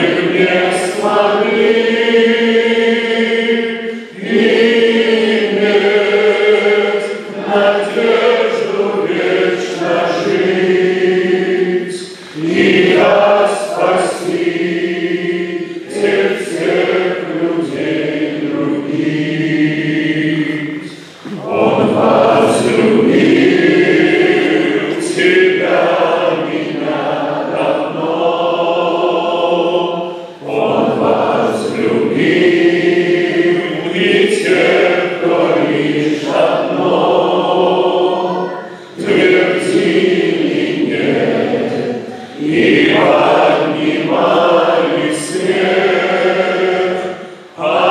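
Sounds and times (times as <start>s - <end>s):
group singing led by men: 0.0s - 47.9s.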